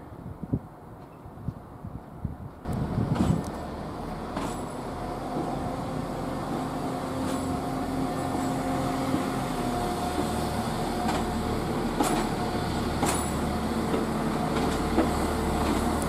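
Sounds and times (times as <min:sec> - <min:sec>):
diesel train passing: 0:02.6 - 0:16.0
wheels clicking over rail joints: 0:02.7 - 0:16.0.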